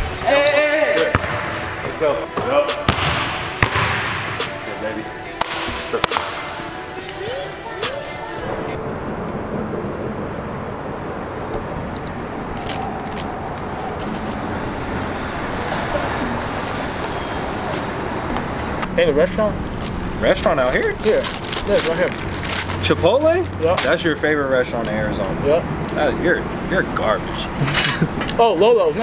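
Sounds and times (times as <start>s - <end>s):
road traffic noise: 1.0s - 29.0s.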